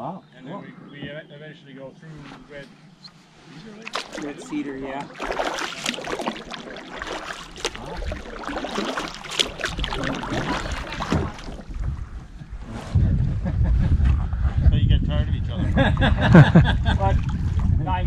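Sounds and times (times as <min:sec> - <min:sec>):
paddle splashing in water: 0:03.7 - 0:12.3
wind buffeting microphone: 0:07.3 - 0:18.0.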